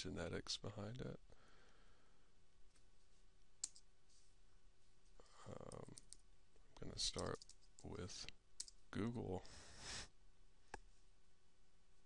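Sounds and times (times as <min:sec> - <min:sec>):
computer mouse click: 0:03.6 - 0:03.8.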